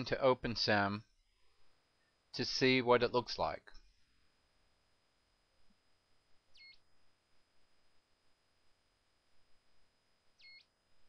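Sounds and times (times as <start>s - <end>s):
faint high-pitched whine: 0.0s - 11.0s
faint electronic chirp: 6.5s - 6.9s, 10.3s - 10.8s.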